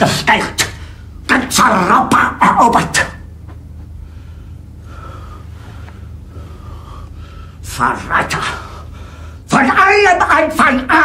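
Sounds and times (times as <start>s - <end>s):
low steady hum: 0.0s - 11.0s
man breathing: 3.8s - 7.6s, 8.5s - 9.5s.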